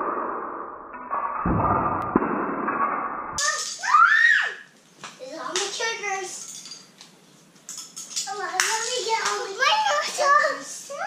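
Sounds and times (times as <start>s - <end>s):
children talking and exclaiming: 3.4s - 6.5s, 8.2s - 11.0s.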